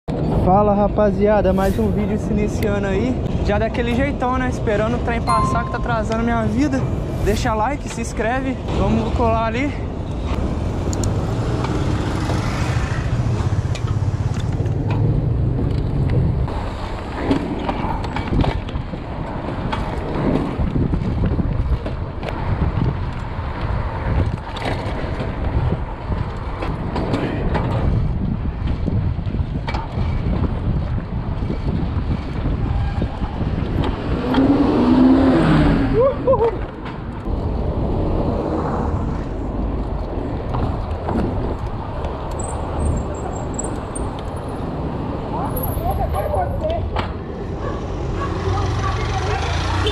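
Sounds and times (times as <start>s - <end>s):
wind and road noise from bike: 0.0s - 49.9s.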